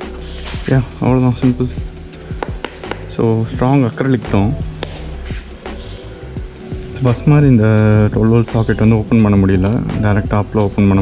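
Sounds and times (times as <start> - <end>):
background music: 0.0 - 11.0
man talking: 0.5 - 1.9, 3.0 - 4.7, 6.9 - 11.0.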